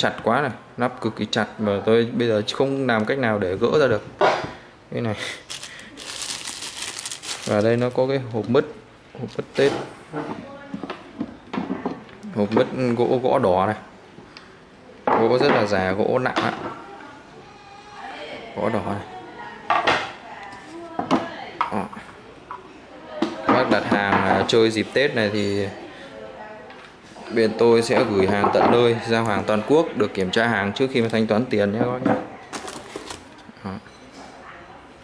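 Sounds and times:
plastic wrapping crinkling: 5.3 - 9.7, 32.4 - 33.5.

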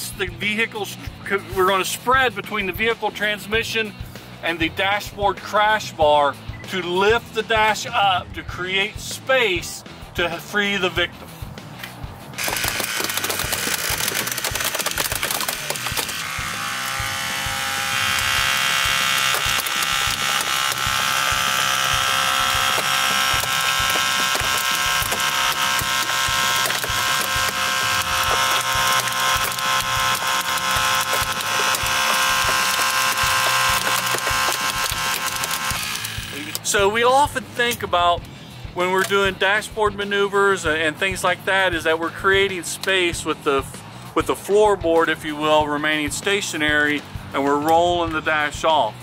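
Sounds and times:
dashboard crackling and creaking: 11.8 - 36.8
hydraulic ram whining: 12.4 - 37.8.

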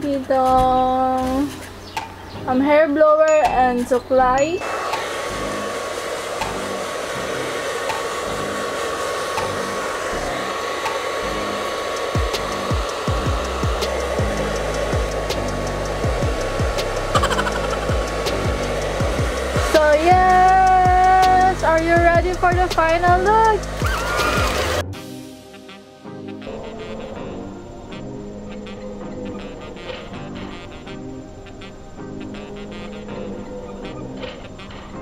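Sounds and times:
background music: 0.0 - 35.0
hair dryer blowing: 4.6 - 24.9.

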